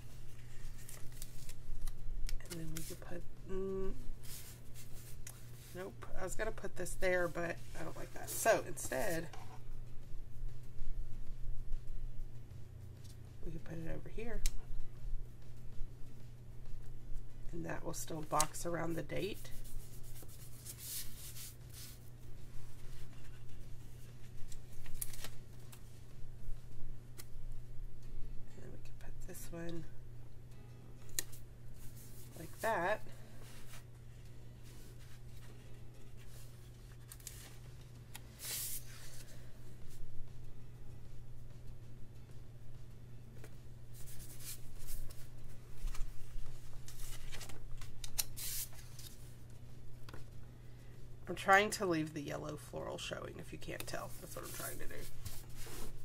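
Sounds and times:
faint paper handling: 0:00.0 - 0:03.1, 0:04.2 - 0:05.8, 0:19.3 - 0:26.0, 0:31.1 - 0:40.0, 0:43.4 - 0:49.4, 0:53.7 - 0:56.0.

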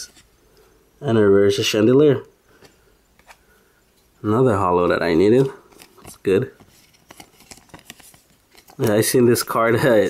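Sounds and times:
man speaking: 0:01.0 - 0:02.3, 0:04.2 - 0:05.6, 0:06.2 - 0:06.6, 0:08.8 - 0:10.0
trading cards shuffled: 0:05.3 - 0:09.6.

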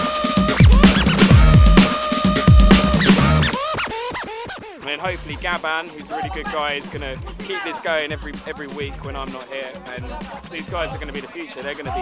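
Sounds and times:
hip hop beat: 0:00.0 - 0:12.0
turntable scratching: 0:00.3 - 0:04.6.

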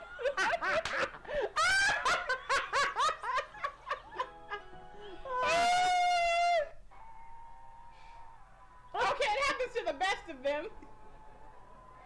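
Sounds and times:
women laughing: 0:00.0 - 0:06.7
music: 0:02.4 - 0:12.0.

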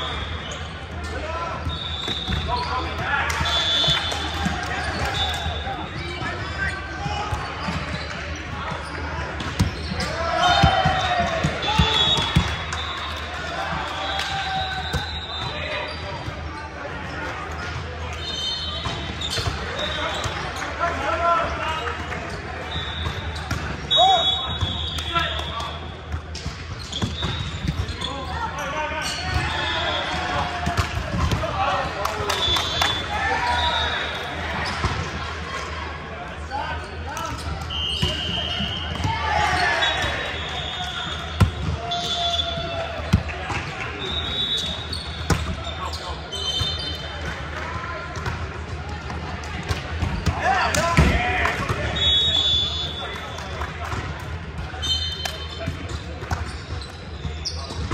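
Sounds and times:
sneakers squeaking on court: 0:00.1 - 0:12.6, 0:14.5 - 0:20.8, 0:21.8 - 0:30.1, 0:36.7 - 0:47.5, 0:54.6 - 0:57.9.

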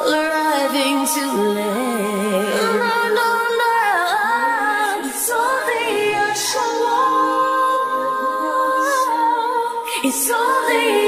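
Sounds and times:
woman singing a cappella: 0:00.0 - 0:11.0.

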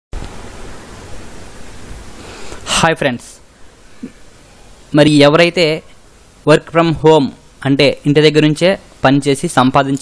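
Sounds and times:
microphone hiss: 0:00.1 - 0:10.0.

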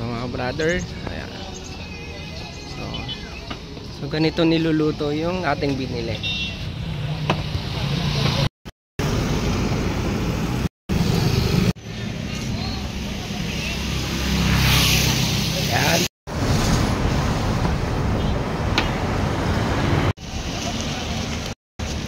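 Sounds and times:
passing vehicles rumble: 0:00.0 - 0:22.0.

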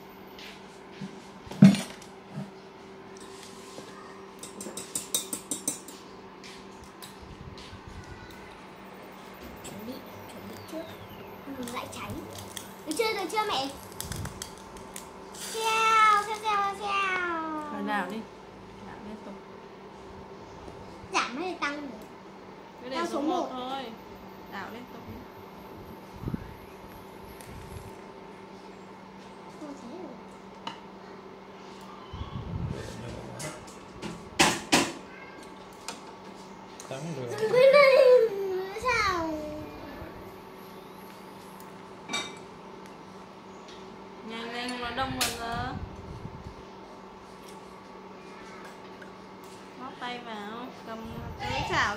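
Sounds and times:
induction cooktop electrical hum: 0:00.0 - 0:51.9
child's drawn-out voice: 0:07.9 - 0:08.6, 0:35.1 - 0:35.5, 0:37.7 - 0:40.2.

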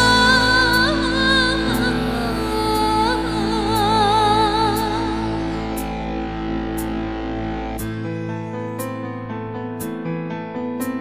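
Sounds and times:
deep bass: 0:00.0 - 0:10.1
keyboard chords in guitar voice: 0:00.0 - 0:11.0.

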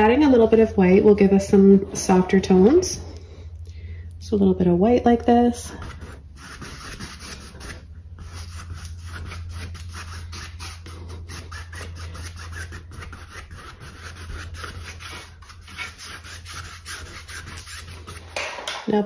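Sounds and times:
low hum: 0:00.0 - 0:06.4
paintbrush scratching on canvas: 0:05.7 - 0:18.4.

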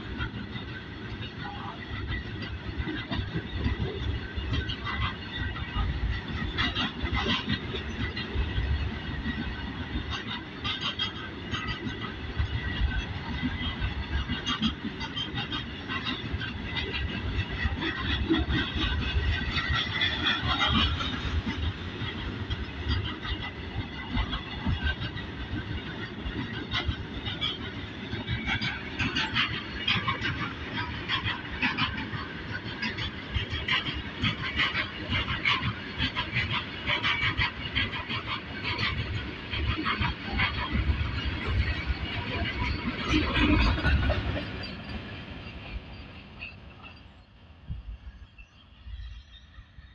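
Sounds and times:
steel wheels clattering on rails: 0:00.0 - 0:49.9.

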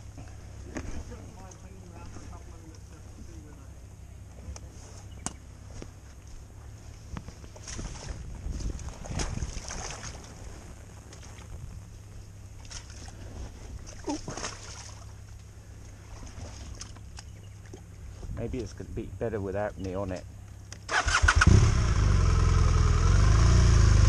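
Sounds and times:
steady low rumble: 0:00.0 - 0:24.0
boots splashing through muddy water: 0:06.0 - 0:10.5, 0:12.5 - 0:18.0.

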